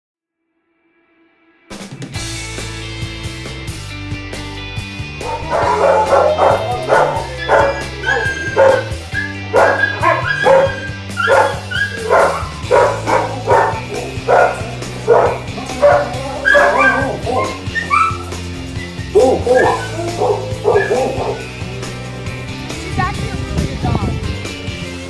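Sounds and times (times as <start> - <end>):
background music: 1.6 - 25.0
dog barking and yipping: 5.2 - 21.6.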